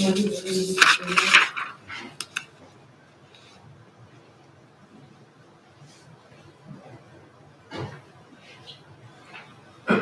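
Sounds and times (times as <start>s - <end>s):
person speaking: 0.0s - 2.5s.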